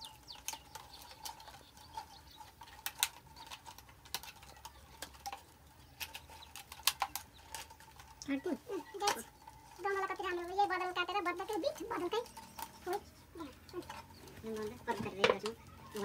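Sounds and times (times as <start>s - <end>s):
plastic bottles crackling: 0.0s - 16.0s.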